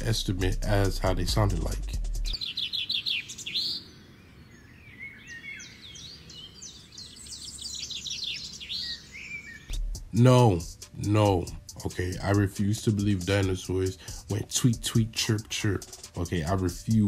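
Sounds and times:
songbird chirping and whistling: 0:01.3 - 0:17.0.

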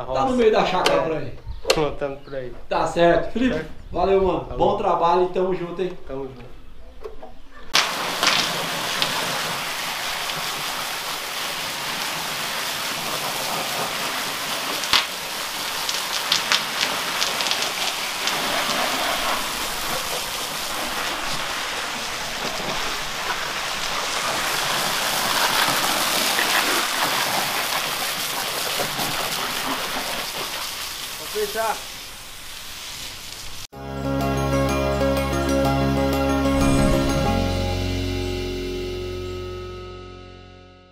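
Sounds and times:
sharp water splashes: 0:07.8 - 0:31.6
hose spraying water: 0:07.8 - 0:33.7.

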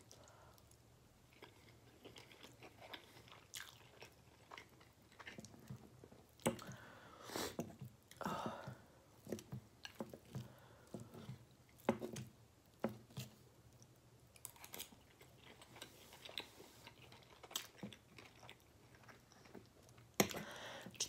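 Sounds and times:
close-up chewing: 0:00.0 - 0:06.9, 0:07.5 - 0:21.0.

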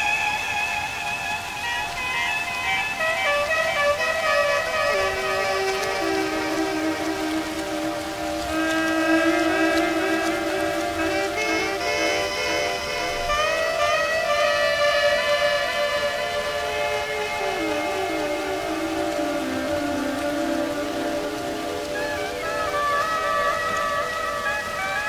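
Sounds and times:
rain hiss: 0:00.0 - 0:25.0
slow woodwind melody: 0:00.0 - 0:25.0.

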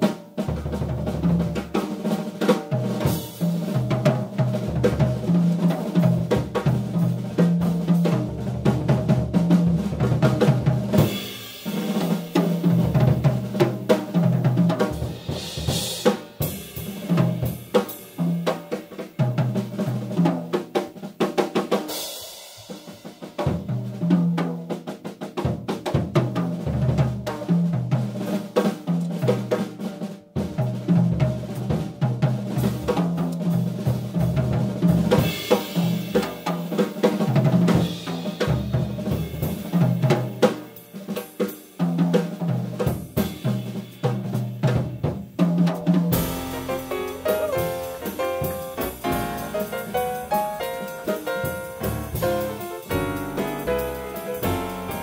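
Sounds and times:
jazz drum solo: 0:00.0 - 0:55.0
piano: 0:00.0 - 0:55.0
upright bass: 0:46.1 - 0:55.0.

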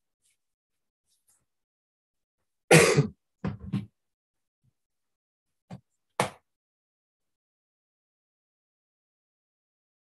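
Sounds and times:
person coughing: 0:02.7 - 0:03.2.

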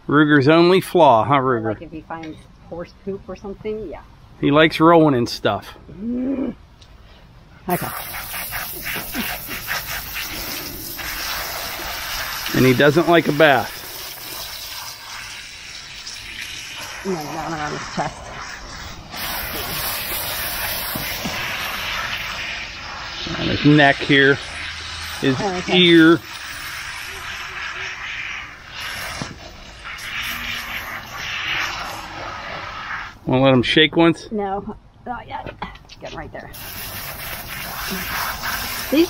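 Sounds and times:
water spraying from hose nozzle: 0:07.7 - 0:33.2, 0:36.5 - 0:39.0.

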